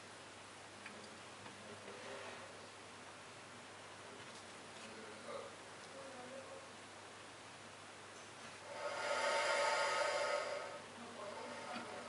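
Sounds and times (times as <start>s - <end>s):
crocodile hissing: 8.6s - 12.0s.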